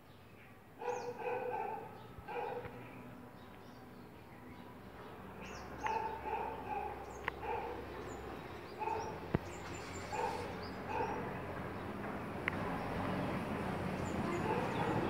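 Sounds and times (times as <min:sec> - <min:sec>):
dog barking: 0:00.8 - 0:02.8, 0:05.8 - 0:07.8, 0:08.8 - 0:09.2, 0:10.1 - 0:11.4, 0:14.3 - 0:15.0.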